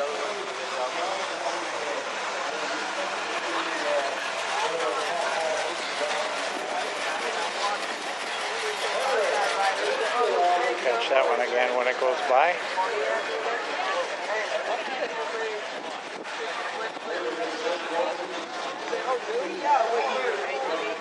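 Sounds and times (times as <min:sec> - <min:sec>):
car engine rolling past: 0:00.0 - 0:21.0
crowd chatter: 0:00.0 - 0:21.0.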